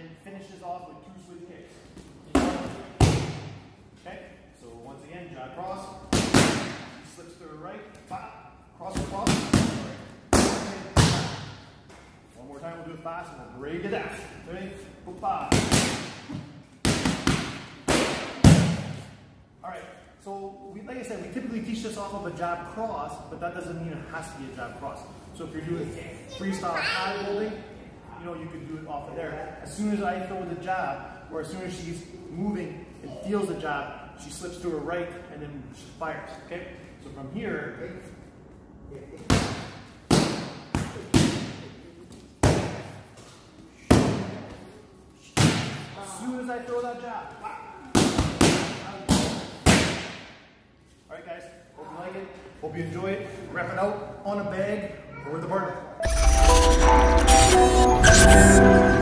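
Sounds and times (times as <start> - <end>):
boxing gloves striking focus mitts: 42.4 - 43.0.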